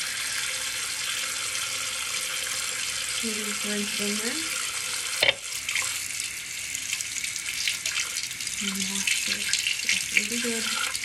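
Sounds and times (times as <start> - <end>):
tap water splashing into basin: 5.2 - 6.0.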